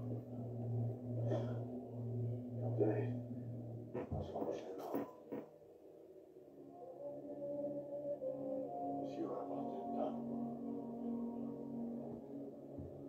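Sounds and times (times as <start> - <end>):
steady low drone: 0.0 - 5.4
muffled voice sounds: 2.6 - 3.2, 4.0 - 5.5, 8.6 - 10.4.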